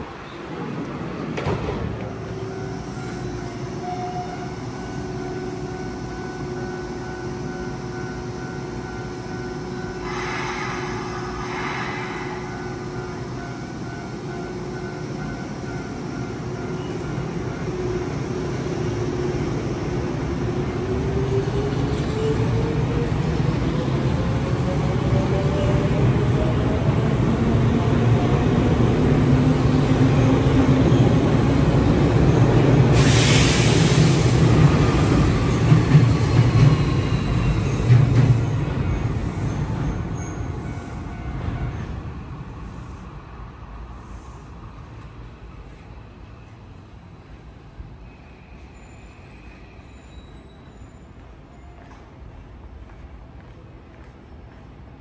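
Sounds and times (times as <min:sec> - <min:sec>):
train running noise: 0:00.0 - 0:55.0.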